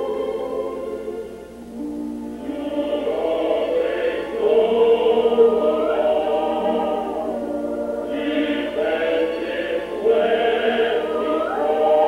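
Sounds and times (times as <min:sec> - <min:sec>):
choir singing sustained chords: 0:00.0 - 0:12.0.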